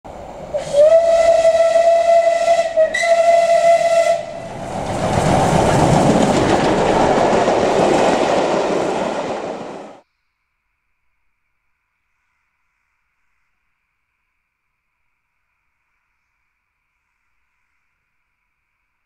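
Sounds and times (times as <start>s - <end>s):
steam locomotive whistle: 0.4s - 4.6s.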